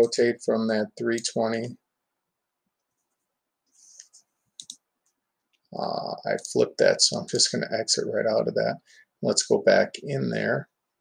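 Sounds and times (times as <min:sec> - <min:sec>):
computer mouse clicks: 0:03.9 - 0:05.7.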